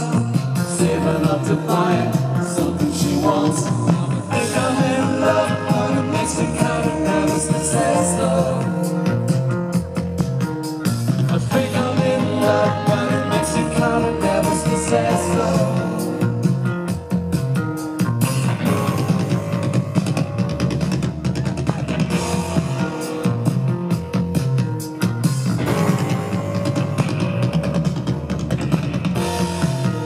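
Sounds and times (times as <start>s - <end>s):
rock band playing: 0.0s - 30.0s.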